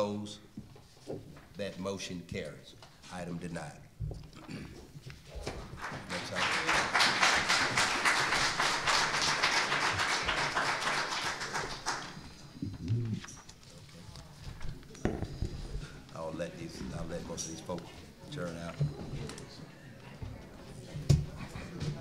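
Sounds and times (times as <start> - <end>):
audience applauding: 5.8 - 12.6.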